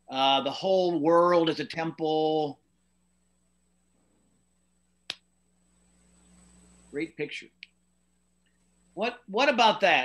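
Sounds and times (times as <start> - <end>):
sharp click: 5.1 - 5.3.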